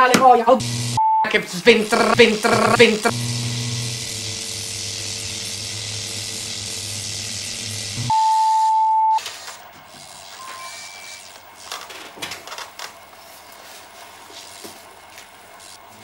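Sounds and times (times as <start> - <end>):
electrical buzz: 0.6 - 1.0, 1.8 - 12.1, 14.3 - 16.0.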